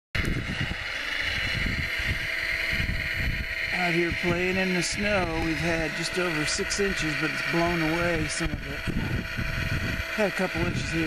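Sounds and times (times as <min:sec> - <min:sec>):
electric motor high whine: 0:00.2 - 0:11.0
wind gusting on microphone: 0:00.2 - 0:11.0
person speaking: 0:03.7 - 0:09.3.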